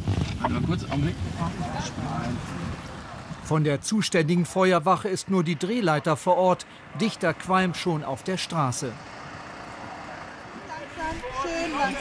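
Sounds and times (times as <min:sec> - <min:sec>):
street background rushing noise: 0:00.0 - 0:12.0.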